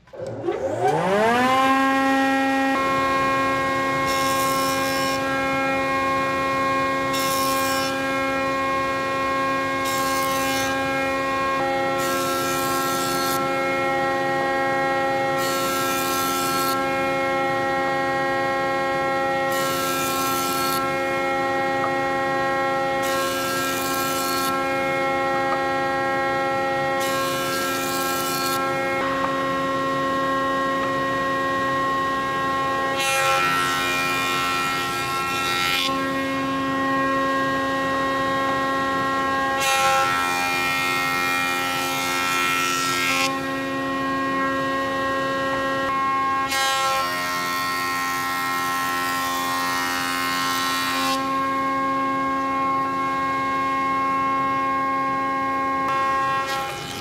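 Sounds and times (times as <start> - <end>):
jointer motor whining: 0.0 - 42.2.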